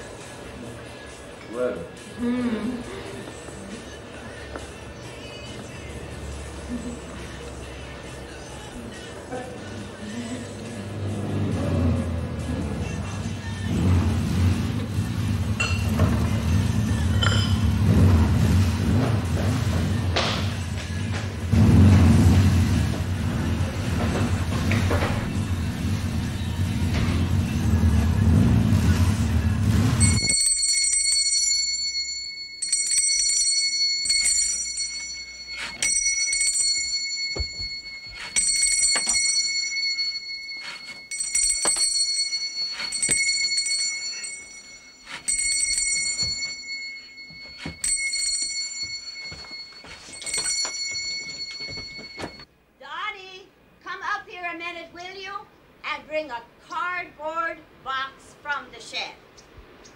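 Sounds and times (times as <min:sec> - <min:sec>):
bus passing with low rumble: 0:05.8 - 0:30.3
bicycle bell ringing: 0:17.2 - 0:17.8, 0:30.0 - 0:52.5.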